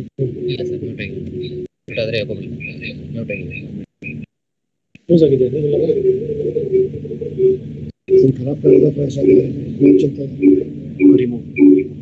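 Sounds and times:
blurred murmur: 5.7 - 12.0.

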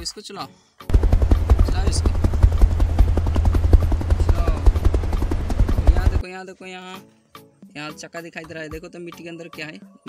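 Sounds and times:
deep rumble: 0.9 - 6.2.

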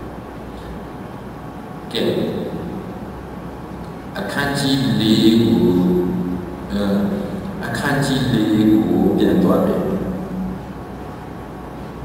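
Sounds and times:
steady low hum: 0.0 - 12.0
man's voice: 1.9 - 2.6, 4.2 - 6.1, 6.7 - 10.2.

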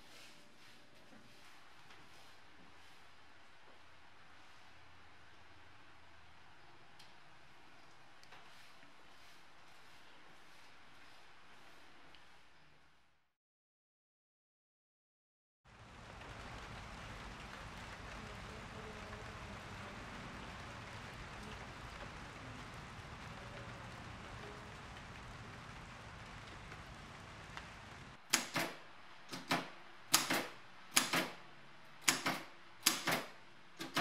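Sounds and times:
steady soft hiss: 0.0 - 13.2, 15.7 - 33.8
manual typewriter keystrokes: 28.3 - 31.4, 32.0 - 34.0.

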